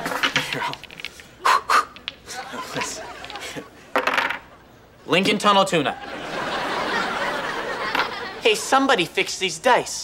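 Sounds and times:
dice shaken in hands: 0.0s - 1.3s
dice clattering on table: 0.1s - 1.3s, 3.2s - 4.4s.

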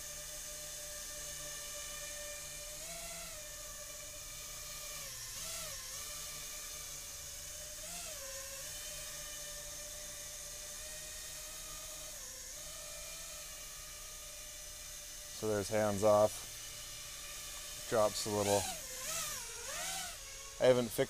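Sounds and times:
quadcopter motors whining: 0.0s - 21.0s.

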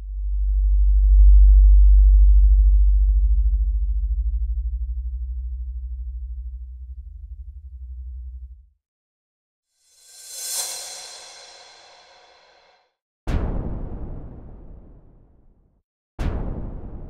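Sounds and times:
deep synth bass drone throbbing: 0.0s - 8.7s.

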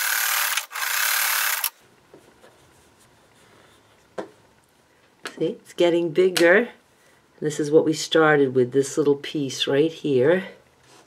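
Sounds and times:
electric sewing machine running: 0.0s - 1.7s.

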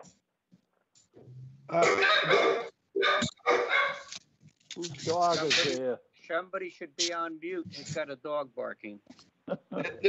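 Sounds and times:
dog barking through microphone: 1.8s - 4.1s.

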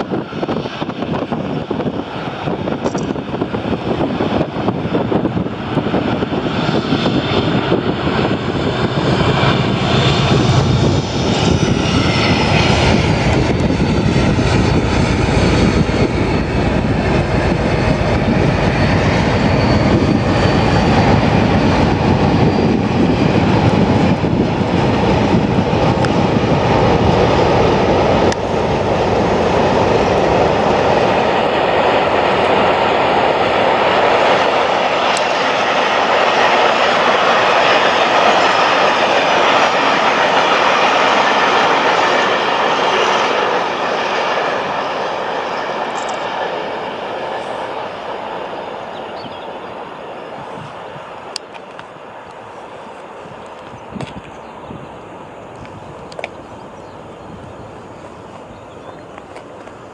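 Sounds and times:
diesel locomotive engine screaming: 0.0s - 53.8s.

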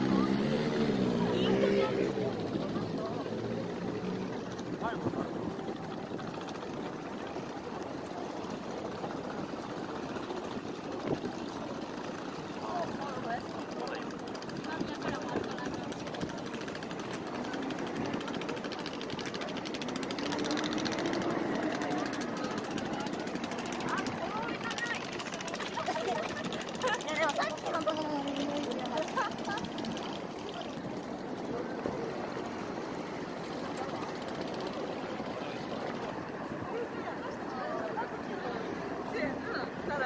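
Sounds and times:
traffic passing: 0.0s - 7.6s, 9.8s - 40.0s
pedestrians chattering: 0.0s - 40.0s.

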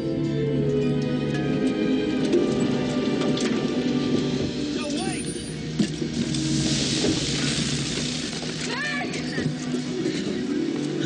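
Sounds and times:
scattered crackles: 2.3s - 11.0s.

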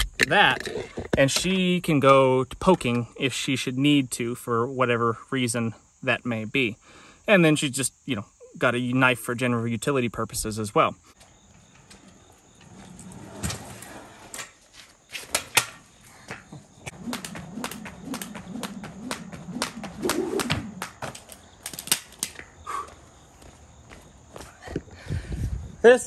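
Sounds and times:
feet landing on concrete: 14.6s - 25.0s
jump rope slapping concrete floor: 16.4s - 22.5s.

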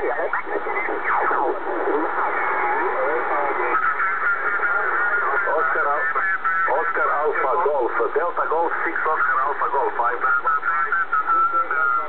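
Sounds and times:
steady radio hiss: 0.0s - 12.0s
thin radio voices: 0.0s - 12.0s.

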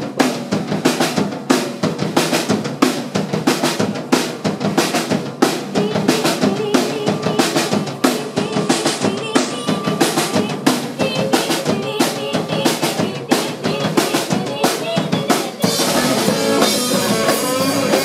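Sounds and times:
drum kit beating fast rhythm: 0.0s - 18.0s
punk rock band playing: 0.0s - 18.0s
electric guitars: 3.4s - 18.0s.

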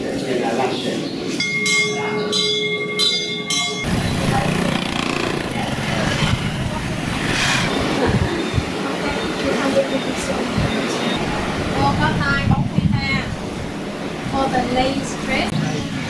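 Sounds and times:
background chatter of people: 0.0s - 16.0s.

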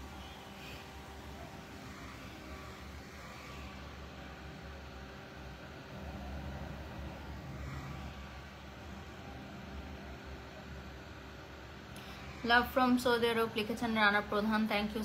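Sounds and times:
handheld fan humming: 0.0s - 15.0s.

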